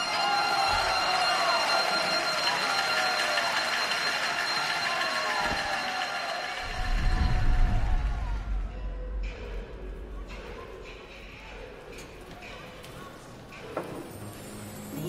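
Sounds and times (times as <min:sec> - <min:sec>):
crowd applauding: 0:00.0 - 0:08.6
crowd calling out: 0:00.0 - 0:09.6
music: 0:00.0 - 0:15.0.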